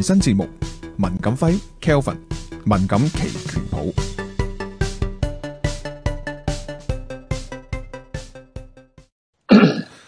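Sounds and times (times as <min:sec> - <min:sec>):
man clearing throat: 0:09.5 - 0:10.0.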